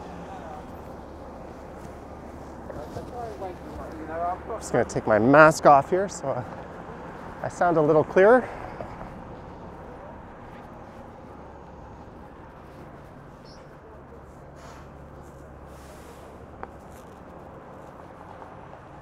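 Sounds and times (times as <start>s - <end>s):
traffic hum: 0.0s - 19.0s.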